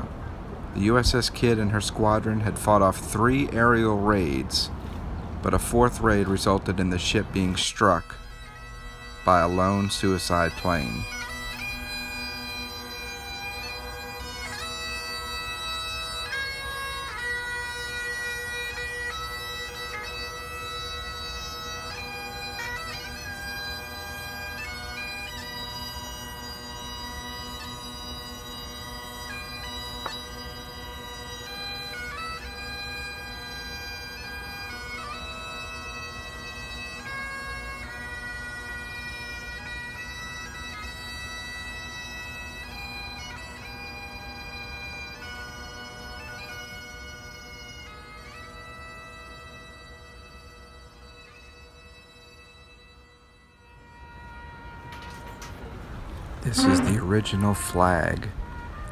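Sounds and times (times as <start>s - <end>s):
bagpipes playing slow melody: 0.0s - 58.9s.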